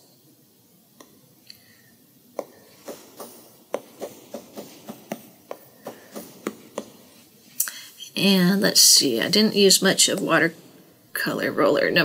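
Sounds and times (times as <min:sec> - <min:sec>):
stylus tapping on glass screen: 0:02.4 - 0:07.0.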